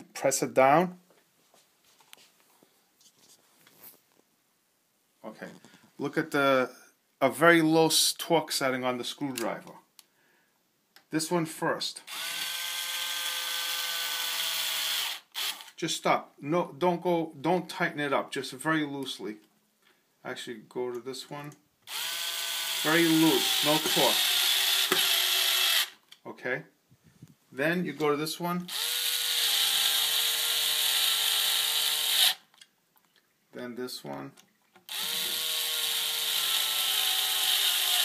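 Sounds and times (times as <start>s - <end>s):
electric screwdriver motor whine: 12.1s - 15.7s, 21.9s - 26.0s, 28.7s - 32.4s, 34.9s - 38.0s.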